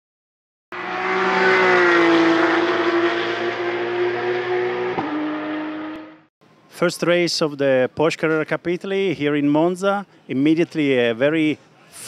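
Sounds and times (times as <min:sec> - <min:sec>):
race car engine at high revs: 0:00.7 - 0:06.3.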